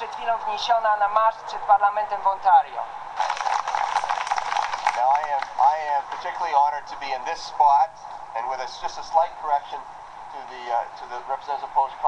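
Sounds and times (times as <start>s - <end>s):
audience applauding: 3.2s - 6.5s.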